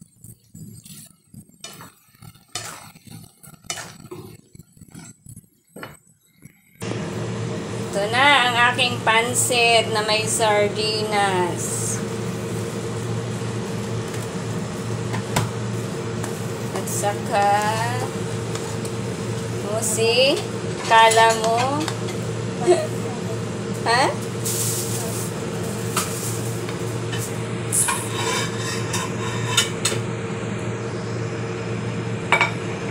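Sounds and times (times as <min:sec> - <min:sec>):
spatula tossing noodles in pan: 0:00.0 - 0:05.4, 0:12.0 - 0:22.6
steady hum and hiss: 0:06.8 - 0:32.9.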